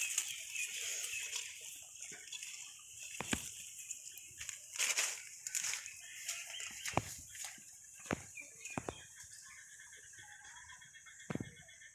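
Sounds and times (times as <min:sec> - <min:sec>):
faint bird calls: 0:05.3 - 0:11.9
sharp knocks or clicks: 0:11.3 - 0:11.6.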